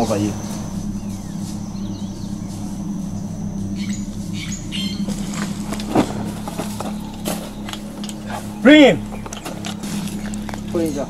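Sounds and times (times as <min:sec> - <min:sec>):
birds chirping: 0:00.0 - 0:11.0
steady low hum: 0:00.0 - 0:11.0.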